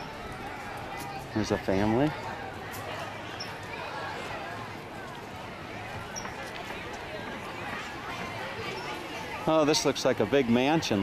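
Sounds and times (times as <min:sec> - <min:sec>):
crowd chatter on a street: 0:00.0 - 0:11.0.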